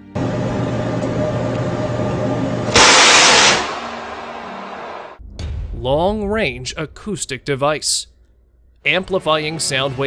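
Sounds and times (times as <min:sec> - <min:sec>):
ship's gun blast: 0:02.7 - 0:08.0.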